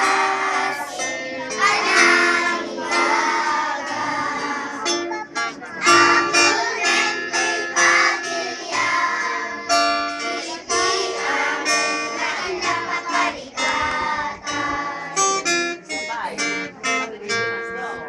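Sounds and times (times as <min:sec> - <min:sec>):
children's choir singing: 0:00.0 - 0:17.4.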